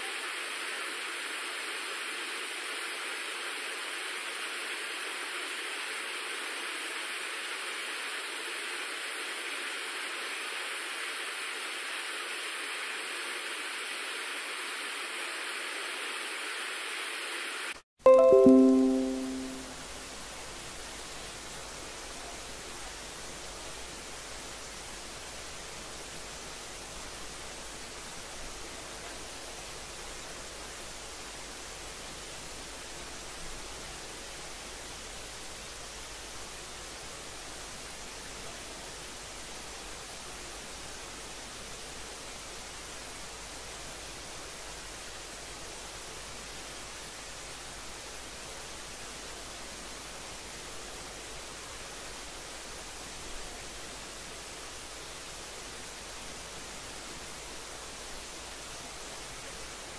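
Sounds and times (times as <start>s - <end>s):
steady background hiss: 0.0s - 59.9s.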